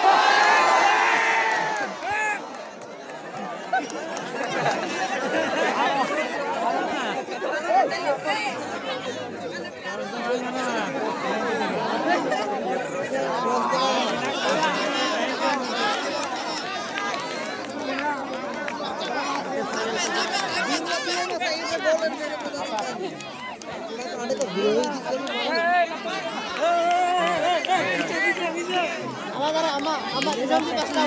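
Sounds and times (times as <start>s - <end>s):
crowd chatter: 0.0s - 31.0s.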